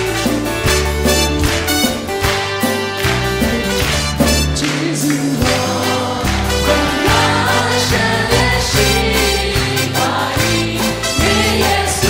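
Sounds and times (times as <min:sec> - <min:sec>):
low bass notes: 0:00.0 - 0:12.0
strummed guitars: 0:00.0 - 0:12.0
backing voices singing: 0:04.2 - 0:12.0
man singing lead vocals: 0:04.5 - 0:09.4.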